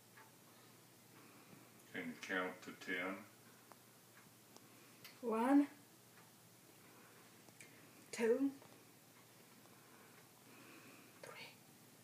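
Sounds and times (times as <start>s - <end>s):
woman whispering: 11.2s - 11.6s.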